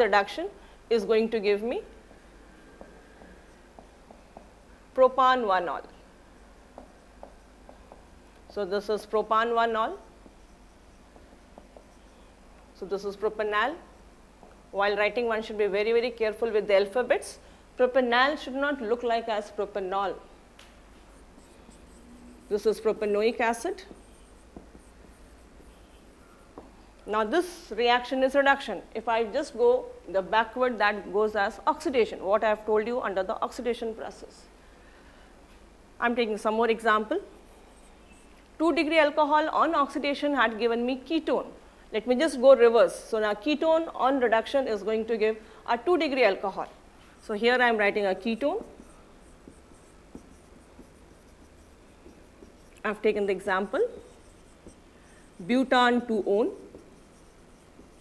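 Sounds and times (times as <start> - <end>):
low steady hum: 0.0 - 58.0
marker scratching on whiteboard: 8.8 - 12.3, 21.0 - 26.8, 36.7 - 40.0, 47.2 - 58.0.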